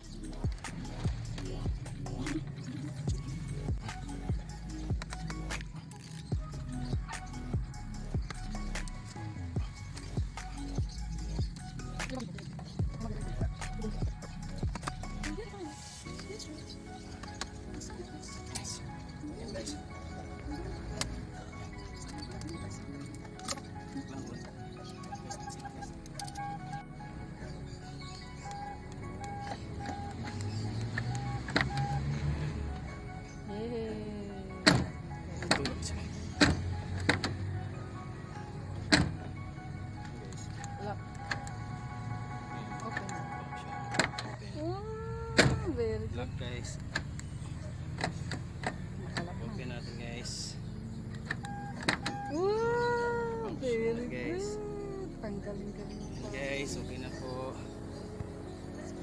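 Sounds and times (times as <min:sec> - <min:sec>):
background music: 0:00.0 - 0:59.0
van door handle clicks: 0:28.5 - 0:32.1, 0:34.5 - 0:37.6, 0:38.8 - 0:39.4, 0:43.9 - 0:44.3, 0:45.3 - 0:45.8, 0:46.8 - 0:49.3, 0:51.1 - 0:52.3.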